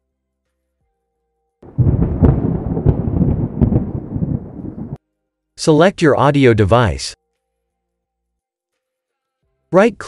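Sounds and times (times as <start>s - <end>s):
thunder-like rumble: 1.6s - 5.0s.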